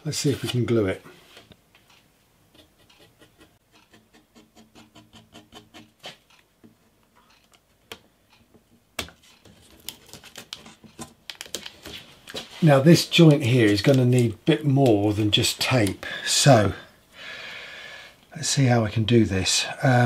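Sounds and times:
soft scrapes and ticks: 0.2s - 6.4s.

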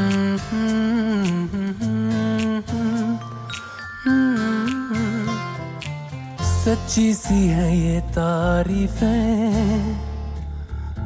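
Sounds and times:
hummed vocal melody: 0.0s - 5.8s
soft musical accompaniment: 0.0s - 11.0s.

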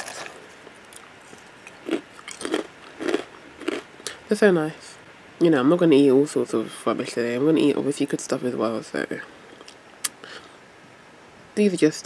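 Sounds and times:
crunchy cereal being chewed: 0.0s - 4.2s.

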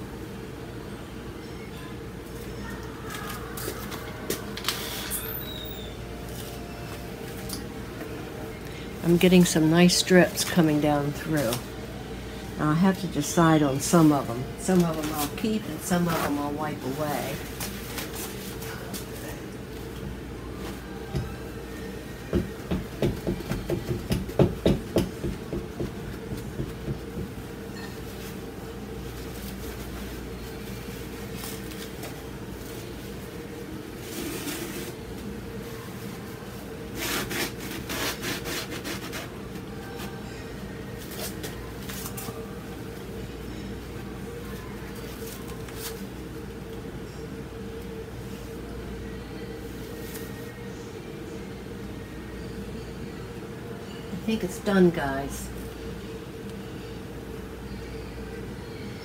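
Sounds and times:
rag rubbing on canvas: 37.0s - 39.4s.

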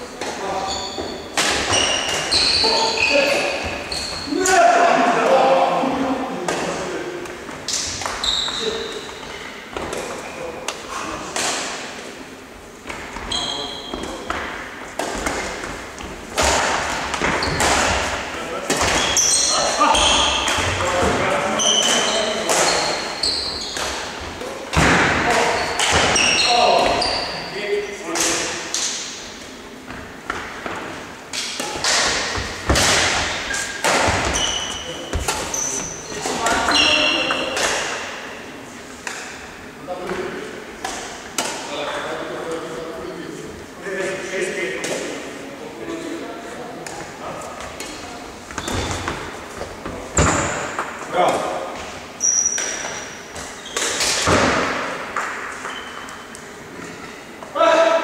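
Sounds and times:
shoes squeaking on wooden floor: 0.4s - 4.4s, 7.6s - 10.3s, 13.1s - 14.5s, 17.1s - 17.8s, 18.9s - 24.2s, 25.4s - 27.6s, 32.3s - 37.6s, 48.4s - 50.8s, 51.8s - 54.1s, 55.5s - 57.1s
rackets striking shuttlecock: 31.3s - 34.4s.

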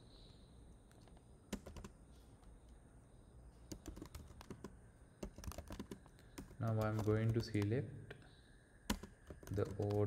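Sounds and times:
computer keyboard typing: 1.5s - 2.0s, 3.7s - 7.7s, 8.9s - 10.0s.

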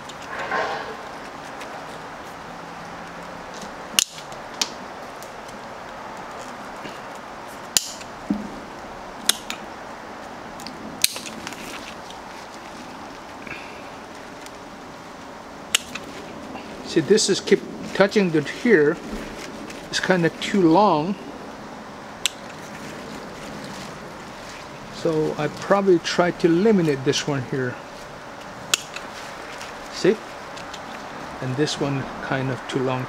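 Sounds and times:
pruning shears snipping twigs: 0.0s - 6.6s, 7.2s - 8.2s, 9.2s - 9.7s, 10.6s - 13.3s, 15.7s - 16.3s, 22.2s - 23.2s, 28.4s - 31.1s.

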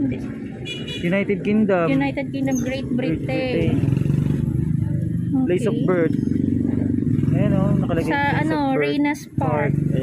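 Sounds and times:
vehicle engine running: 1.9s - 10.0s.

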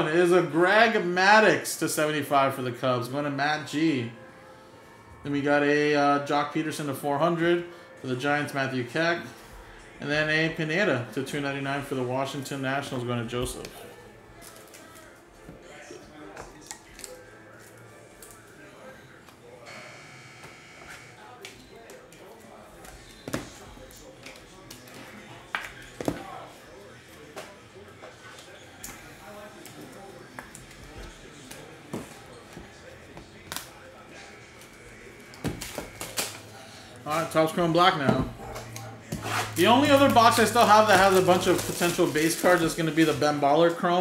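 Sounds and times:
quiet background music: 0.0s - 44.0s.

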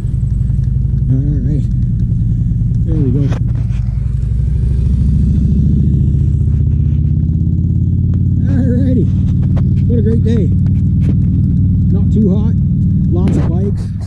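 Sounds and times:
motorcycle engine rumbling past: 0.0s - 14.0s.

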